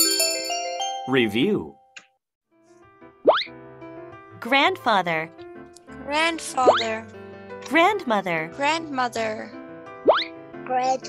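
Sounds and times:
soft music: 0:00.0 - 0:01.9, 0:02.6 - 0:11.0.

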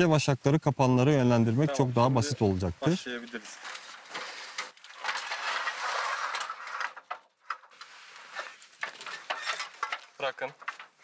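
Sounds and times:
hands scraping and rustling: 0:02.4 - 0:11.0.

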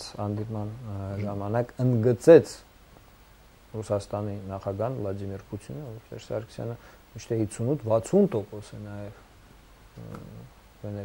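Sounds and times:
man speaking: 0:00.0 - 0:02.7, 0:03.7 - 0:09.2, 0:10.0 - 0:11.0
short low voiced sound: 0:10.0 - 0:10.5.

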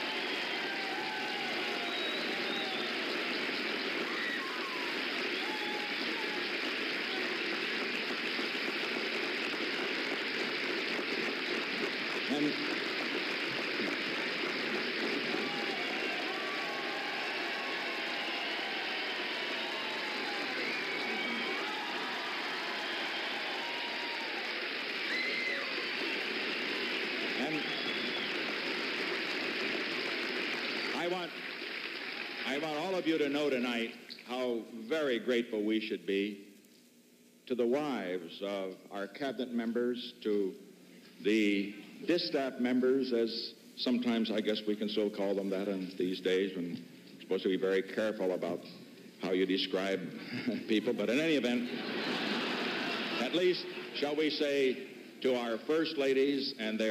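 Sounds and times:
crowd shouts and voices: 0:00.0 - 0:07.5, 0:15.0 - 0:28.3
crowd clapping: 0:00.0 - 0:33.6, 0:50.7 - 0:55.5.

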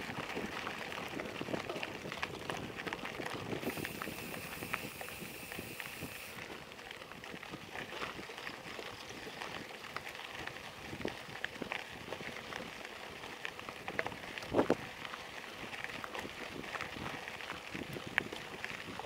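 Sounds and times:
bike rattling: 0:00.0 - 0:19.0
bike tyres crunching on gravel: 0:00.0 - 0:19.0.

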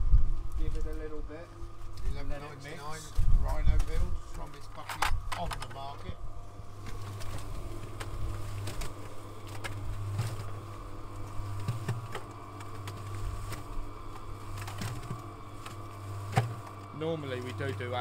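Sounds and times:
cement mixer humming: 0:00.0 - 0:18.0
mortar tumbling in drum: 0:06.8 - 0:16.9.

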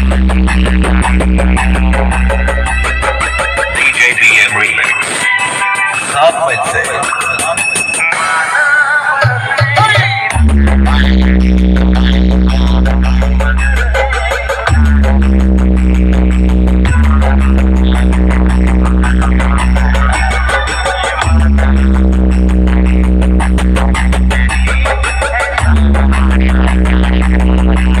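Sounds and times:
electronic dance music: 0:00.0 - 0:28.0.

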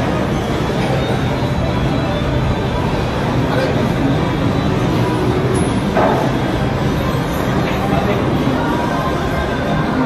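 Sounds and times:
loud background noise: 0:00.0 - 0:10.0.

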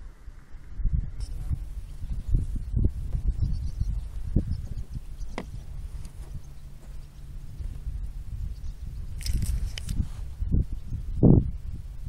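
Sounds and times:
faint steady hum: 0:00.0 - 0:12.0
wind noise on microphone: 0:00.0 - 0:12.0.

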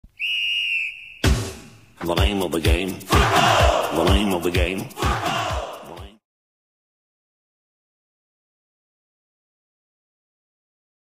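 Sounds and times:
high steady whistle tone: 0:00.1 - 0:01.3.

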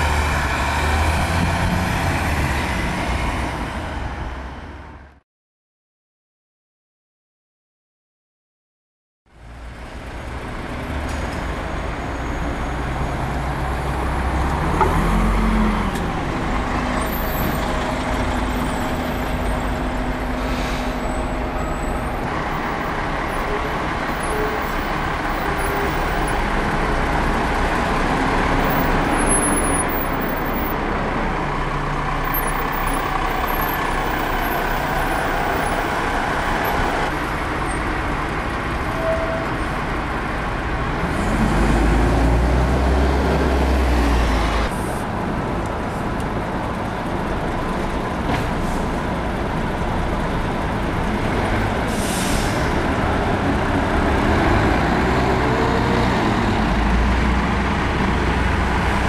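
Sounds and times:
diesel buses driving by: 0:00.0 - 0:05.2, 0:09.3 - 0:59.0.

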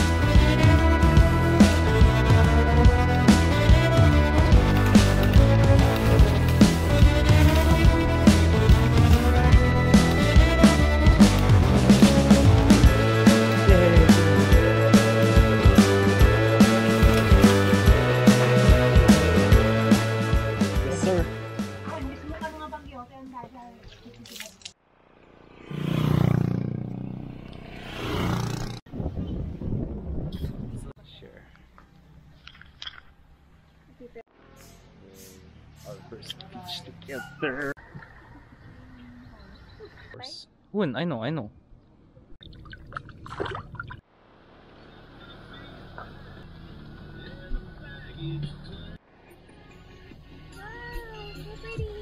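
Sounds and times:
low road noise rumble: 0:24.7 - 0:40.3, 0:44.0 - 0:52.0
vehicle engine passing by: 0:24.8 - 0:28.9, 0:34.3 - 0:37.6.

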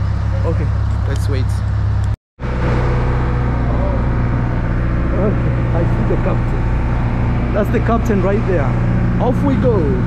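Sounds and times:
ferry engine idling: 0:00.0 - 0:10.0.

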